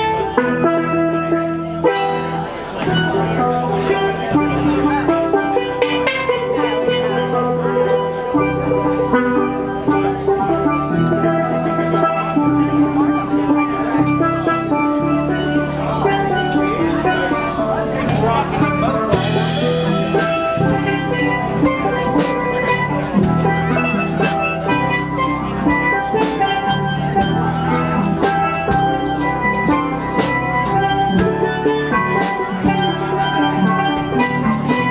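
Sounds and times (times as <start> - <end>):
drum kit: 0.0 - 34.9
electric bass guitar: 0.0 - 34.9
steel pans playing melody: 0.0 - 34.9.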